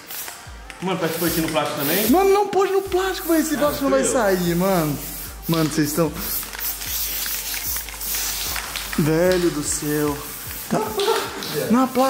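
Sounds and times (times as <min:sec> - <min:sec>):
aerosol can hissing: 0:00.0 - 0:12.0.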